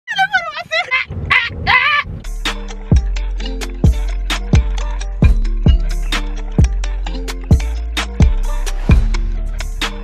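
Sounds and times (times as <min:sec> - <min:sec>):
woman screaming: 0:00.5 - 0:02.1.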